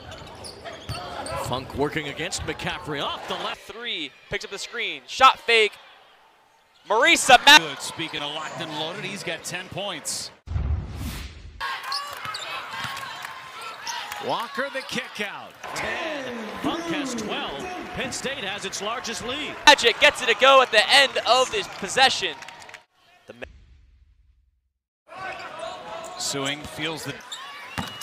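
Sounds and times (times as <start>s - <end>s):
crowd voices: 15.6s - 22.8s.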